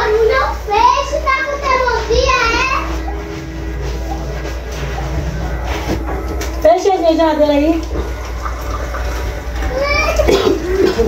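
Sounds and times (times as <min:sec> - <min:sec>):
child calling out: 0:09.7 - 0:10.4.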